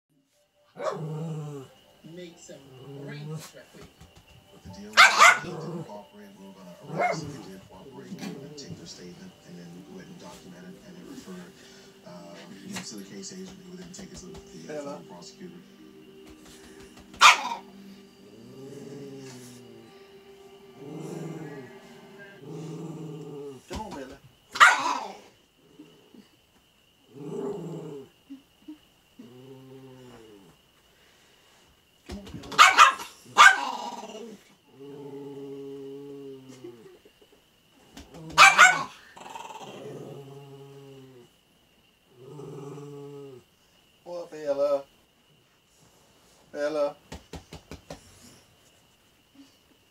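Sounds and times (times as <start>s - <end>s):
faint tv sound: 0.1s - 26.4s, 27.1s - 41.4s
small dog barking: 0.8s - 1.0s, 5.0s - 5.6s, 6.8s - 7.3s, 17.2s - 17.7s, 24.5s - 25.2s, 32.5s - 33.9s, 38.4s - 39.0s
small dog growling: 0.8s - 1.8s, 5.1s - 6.0s, 17.3s - 19.9s, 20.8s - 23.8s, 27.1s - 30.6s, 33.2s - 37.1s, 38.0s - 41.3s, 42.1s - 43.5s.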